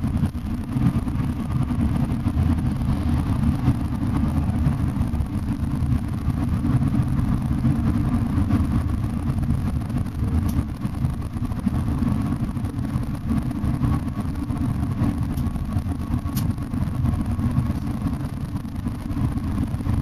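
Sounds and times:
coach engine and road rumble: 0.0s - 20.0s.

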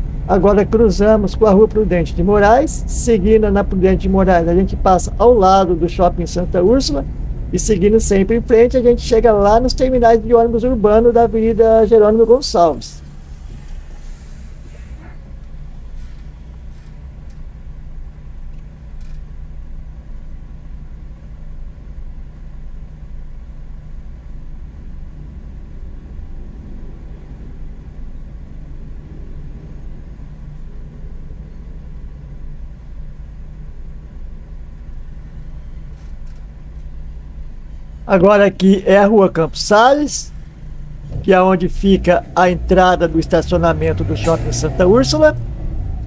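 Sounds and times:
car engine and tyre noise: 0.0s - 46.0s.

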